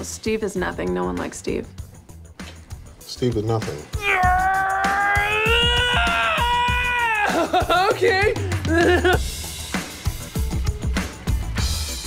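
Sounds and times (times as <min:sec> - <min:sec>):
music with drum beat: 0:00.6 - 0:12.0
man screaming: 0:04.0 - 0:07.6.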